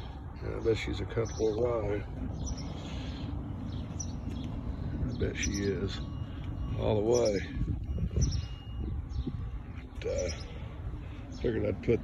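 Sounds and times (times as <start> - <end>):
low outdoor rumble: 0.0 - 12.0
faint high bird chirps: 5.2 - 11.8.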